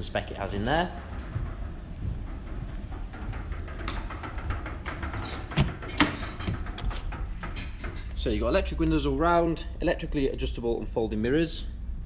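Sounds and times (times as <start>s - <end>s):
low steady rumble: 0.0s - 12.0s
footsteps: 0.4s - 5.5s
handling noise: 0.6s - 8.3s.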